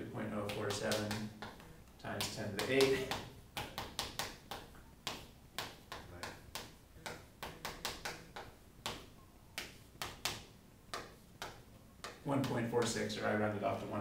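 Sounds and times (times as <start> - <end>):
chalk tapping and scratching on chalkboard: 0.4 - 13.2.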